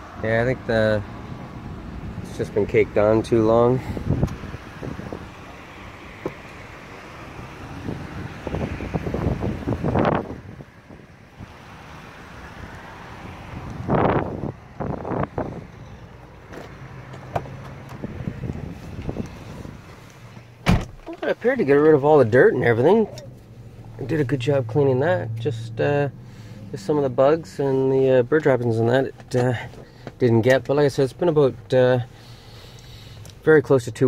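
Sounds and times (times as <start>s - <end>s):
low rumble of road traffic: 0.0s - 34.0s
wind buffeting microphone: 3.8s - 6.7s, 7.3s - 11.6s, 12.6s - 15.8s, 17.5s - 20.0s.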